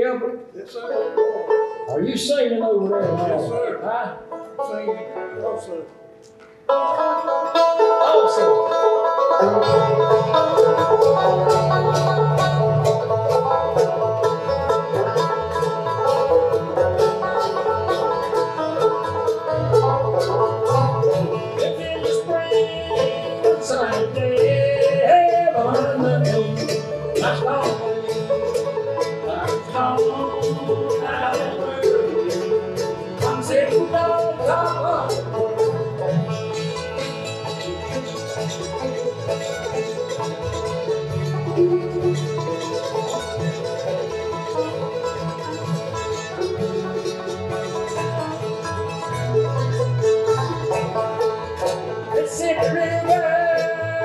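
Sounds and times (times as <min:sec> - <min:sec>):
acoustic guitar: 0:00.0 - 0:54.0
mandolin: 0:00.0 - 0:54.0
picked banjo: 0:00.0 - 0:54.0
upright bass: 0:06.7 - 0:54.0.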